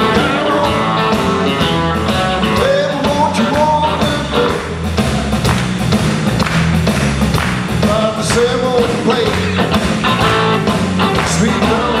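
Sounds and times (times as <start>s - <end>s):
man singing: 0.0s - 1.7s, 2.4s - 4.8s, 7.8s - 10.0s, 11.0s - 12.0s
drum kit: 0.0s - 12.0s
electric bass: 0.0s - 12.0s
electric guitar: 0.0s - 12.0s.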